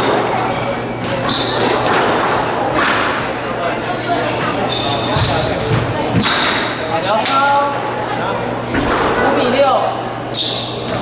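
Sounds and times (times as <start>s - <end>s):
shoes squeaking on wooden floor: 3.9s - 6.5s.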